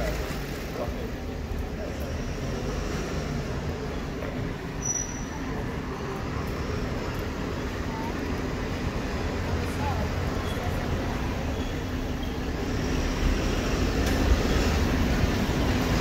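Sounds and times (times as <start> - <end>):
low street rumble: 0.0 - 16.0.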